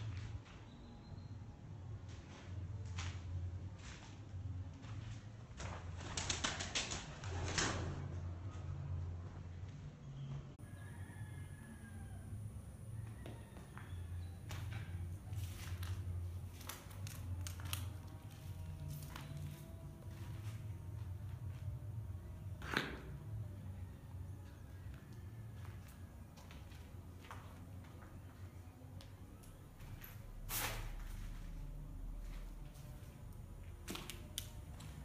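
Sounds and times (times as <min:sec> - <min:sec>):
footsteps crunching on concrete: 0:25.5 - 0:28.4.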